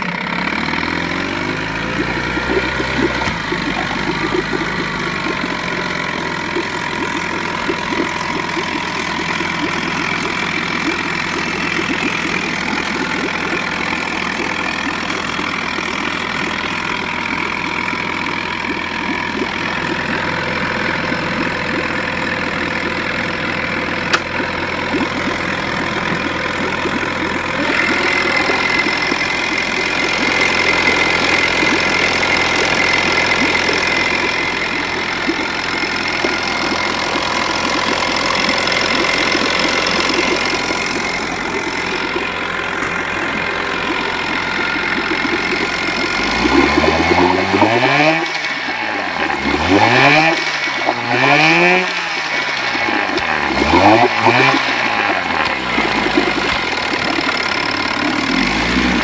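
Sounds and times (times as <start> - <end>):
outboard motor running: 0.0 - 59.0.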